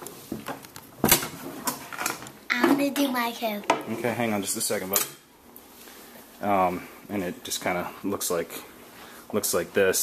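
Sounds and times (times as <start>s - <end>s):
man talking: 3.9s - 5.0s, 6.4s - 8.7s, 9.3s - 10.0s.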